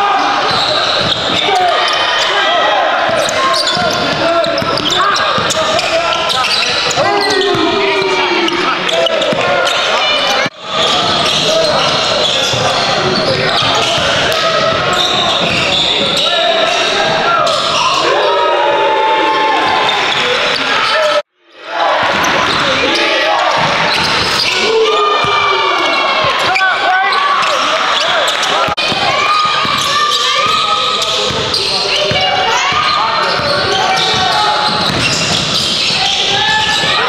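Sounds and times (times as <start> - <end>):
indistinct shouting and chatter: 0.0 - 37.0.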